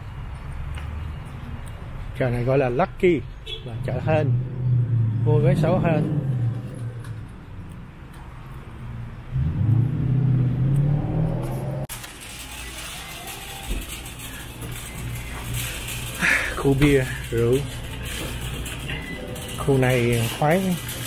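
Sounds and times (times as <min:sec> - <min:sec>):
supermarket interior hiss: 0:11.9 - 0:17.6
faint background music: 0:12.1 - 0:21.0.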